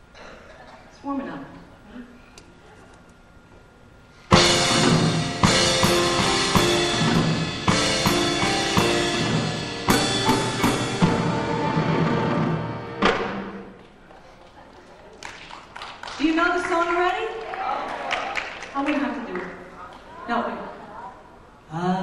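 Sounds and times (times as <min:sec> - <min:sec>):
drum and cymbal hits: 0:04.3 - 0:13.8
piano chords: 0:04.3 - 0:14.0.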